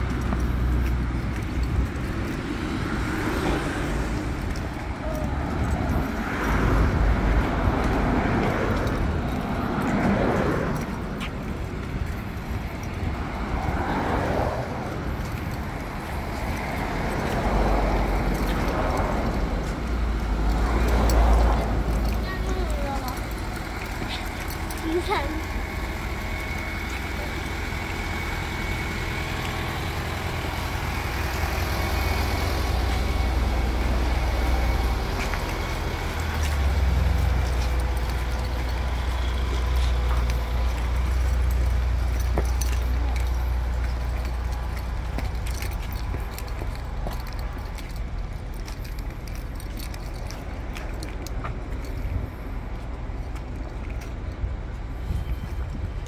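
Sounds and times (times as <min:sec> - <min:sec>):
road traffic rumble: 0:00.0 - 0:56.0
street noise hiss: 0:00.0 - 0:56.0.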